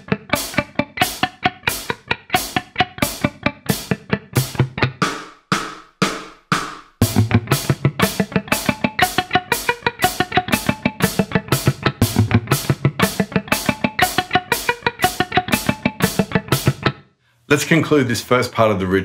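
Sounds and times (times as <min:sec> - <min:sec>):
electric guitar alternate picking: 0:00.0 - 0:05.2, 0:07.0 - 0:17.0
drum beat: 0:00.0 - 0:17.0.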